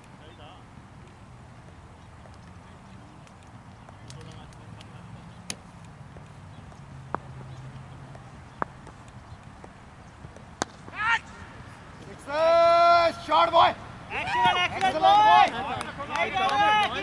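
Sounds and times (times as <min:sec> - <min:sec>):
cricket bat striking ball: 0:10.3 - 0:11.4
players shouting: 0:10.8 - 0:17.0.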